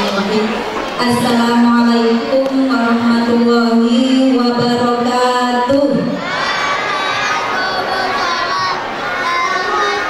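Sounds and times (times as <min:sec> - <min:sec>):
children calling out together: 0:06.1 - 0:10.0.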